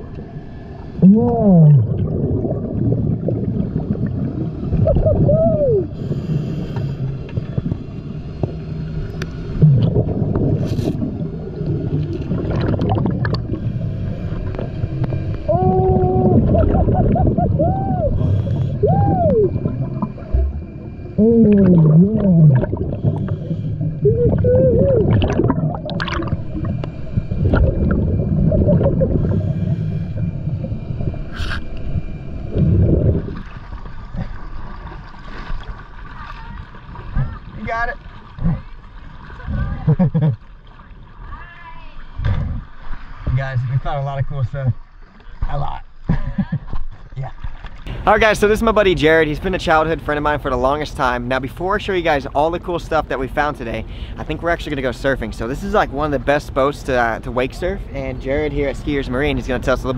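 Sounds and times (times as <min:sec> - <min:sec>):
rushing exhaust bubbles: 0:01.0 - 0:06.0, 0:07.0 - 0:36.0
scuba regulator breathing: 0:05.9 - 0:07.5, 0:13.4 - 0:15.2, 0:18.1 - 0:19.6, 0:22.7 - 0:24.8, 0:28.9 - 0:31.9, 0:53.8 - 0:54.3.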